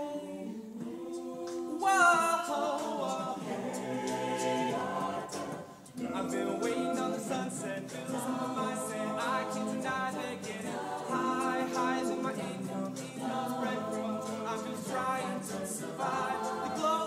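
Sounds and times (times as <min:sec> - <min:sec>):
choir singing a cappella: 0:00.0 - 0:17.0.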